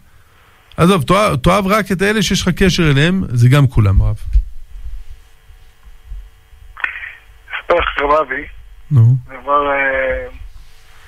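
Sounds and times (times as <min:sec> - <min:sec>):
faint steady hum: 0:00.0 - 0:11.0
low room rumble: 0:00.0 - 0:11.0
person speaking: 0:06.8 - 0:10.4.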